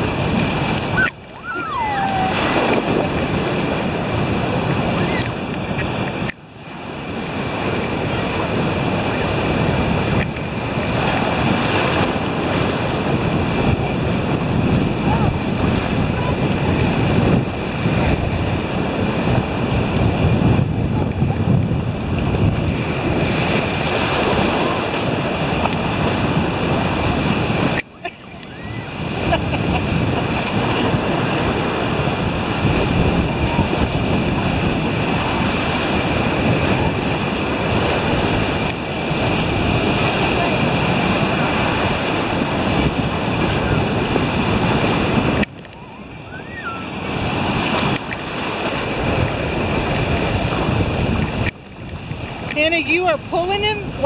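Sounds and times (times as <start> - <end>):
ocean surf breaking: 0.0 - 54.0
wind buffeting microphone: 0.0 - 54.0.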